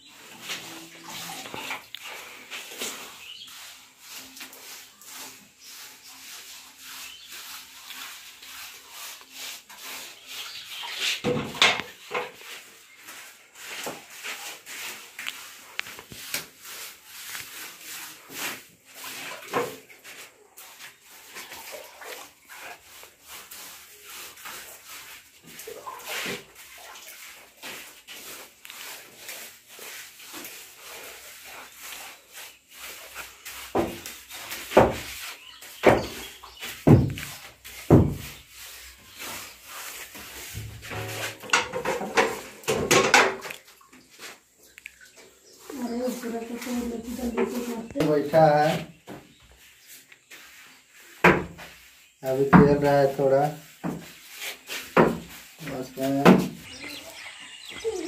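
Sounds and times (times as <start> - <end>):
paintbrush scrubbing rough wall: 0.0 - 58.0.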